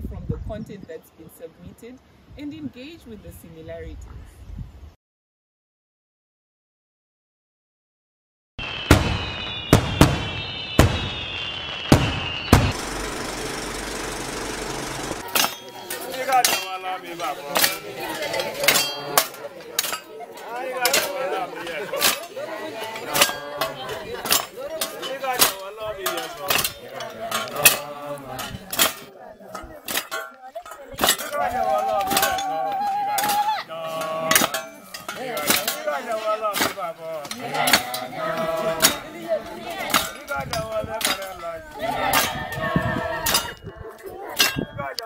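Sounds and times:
voices: 0:00.0 - 0:04.1, 0:09.1 - 0:45.0
firework hiss: 0:08.6 - 0:13.1
firework whistles: 0:08.6 - 0:13.1
firework bangs: 0:08.6 - 0:15.4
hoes and shovels clinking: 0:14.2 - 0:45.0.

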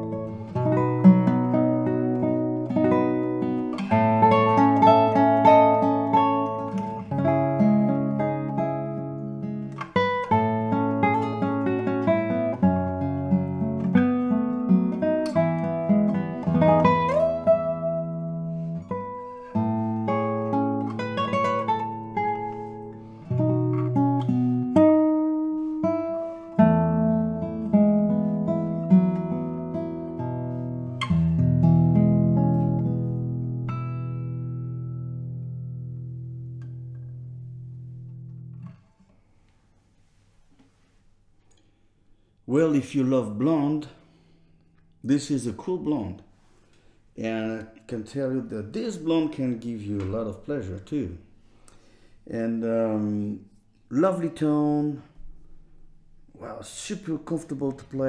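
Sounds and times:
solo classical guitar piece: 0:00.0 - 0:42.3.

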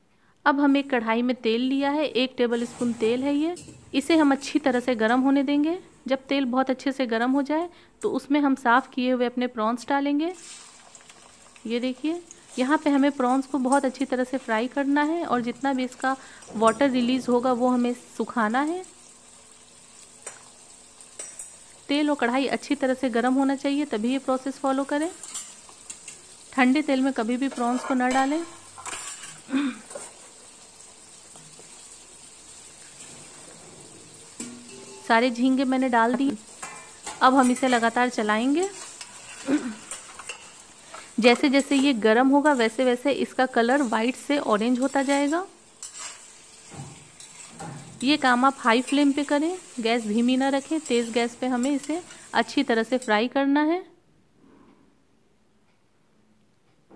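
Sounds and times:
prawns sizzling in hot oil: 0:10.0 - 0:53.4
metal spatula stirring: 0:21.1 - 0:21.6, 0:24.8 - 0:26.4, 0:27.1 - 0:30.4, 0:34.3 - 0:53.4.

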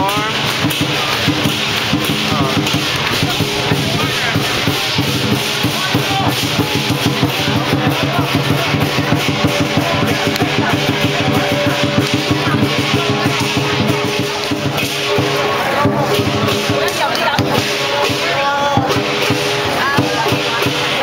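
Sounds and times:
crashing cymbals: 0:00.0 - 0:21.0
drum beaten in fast rhythm: 0:00.0 - 0:21.0.

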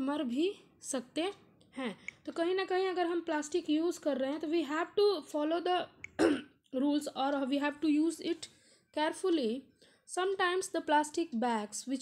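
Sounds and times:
person clearing throat: 0:06.2 - 0:06.5.

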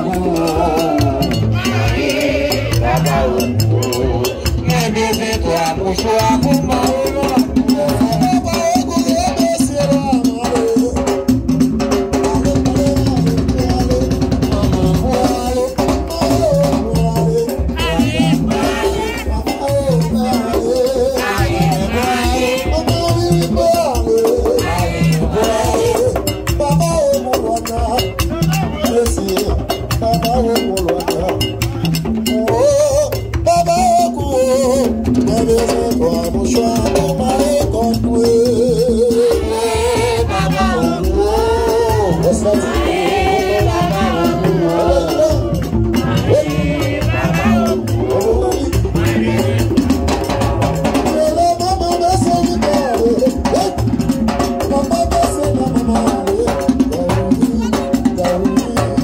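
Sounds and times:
drums beating: 0:00.0 - 0:59.0
people singing: 0:00.0 - 0:59.0.

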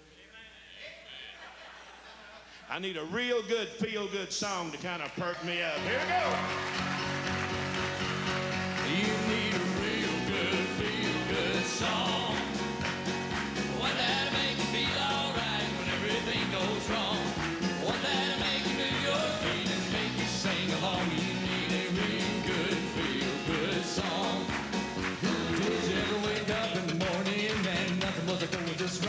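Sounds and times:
grand piano: 0:05.9 - 0:28.1
drums keeping a steady beat: 0:07.1 - 0:29.0.

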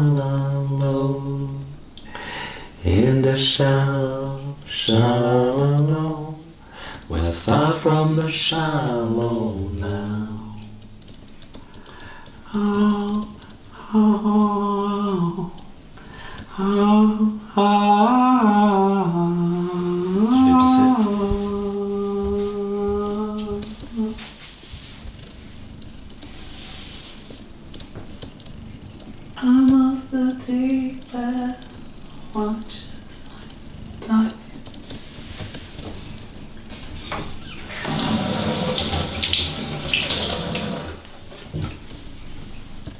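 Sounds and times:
person singing wordless notes: 0:16.5 - 0:24.3
tap water running into sink: 0:37.7 - 0:41.0.

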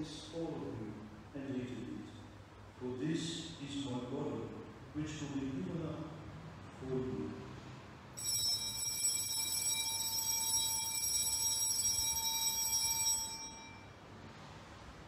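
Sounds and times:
small bells ringing: 0:08.2 - 0:14.0.

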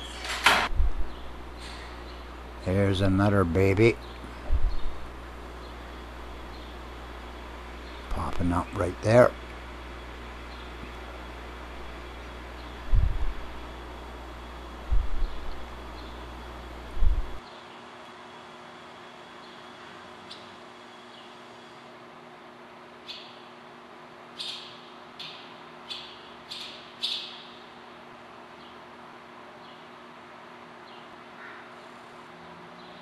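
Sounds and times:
dull low thumps: 0:00.7 - 0:01.6, 0:04.2 - 0:05.3, 0:12.8 - 0:13.9, 0:14.7 - 0:17.4
swallows chirping: 0:01.0 - 0:14.0, 0:15.0 - 0:17.8, 0:24.4 - 0:27.8.

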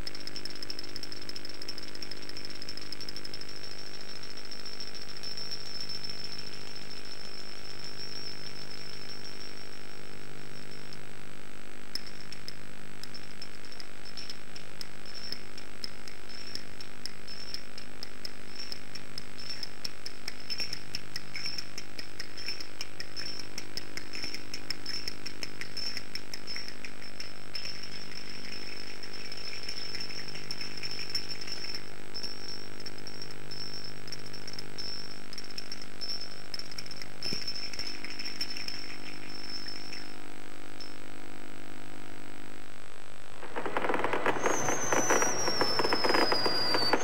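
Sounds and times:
high whine: 0:00.0 - 0:12.3, 0:37.3 - 0:47.0
recording crackle: 0:00.0 - 0:47.0.

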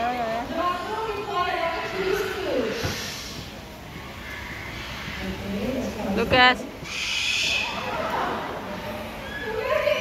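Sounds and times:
parrot hissing screech: 0:06.8 - 0:07.9
parrot calling: 0:06.8 - 0:08.1.

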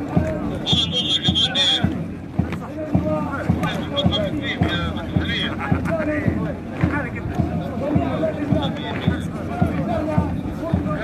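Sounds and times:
boots marching in step: 0:00.0 - 0:11.0.

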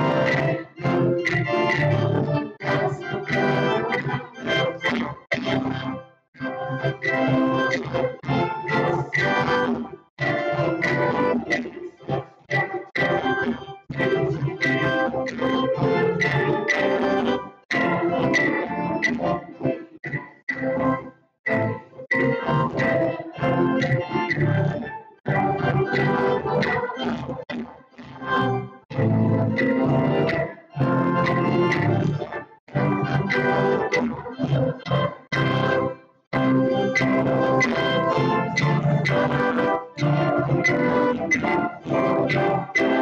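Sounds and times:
church organ music: 0:29.4 - 0:34.0, 0:34.9 - 0:43.0.

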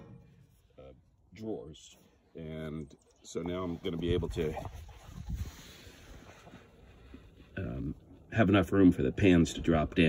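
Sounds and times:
wind noise on microphone: 0:03.8 - 0:07.2.

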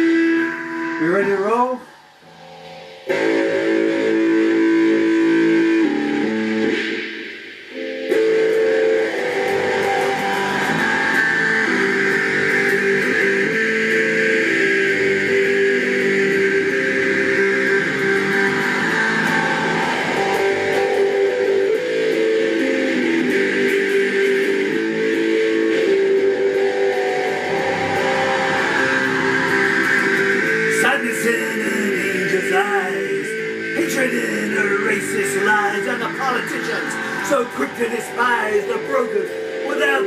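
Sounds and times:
electric guitar chords: 0:00.0 - 0:40.0.

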